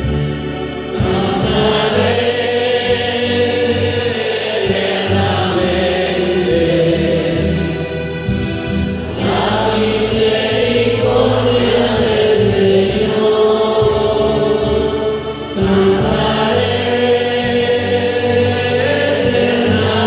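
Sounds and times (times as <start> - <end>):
sustained accompanying chords: 0.0 - 20.0
man singing slow melody: 1.0 - 7.8, 10.9 - 20.0.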